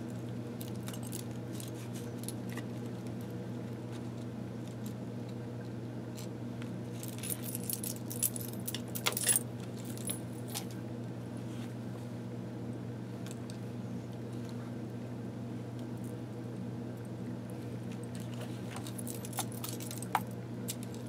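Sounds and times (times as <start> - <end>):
steady low hum: 0.0 - 21.0
metal charms jingling: 7.0 - 10.7, 18.8 - 21.0.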